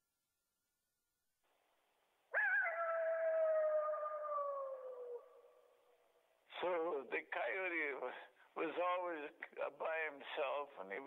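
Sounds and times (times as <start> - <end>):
coyote howl: 2.3 - 5.8.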